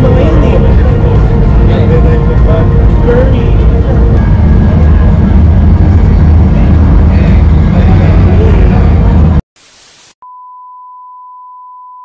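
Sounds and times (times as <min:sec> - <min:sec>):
steady test tone: 0:00.0 - 0:10.1
tv static hiss: 0:03.6 - 0:10.2.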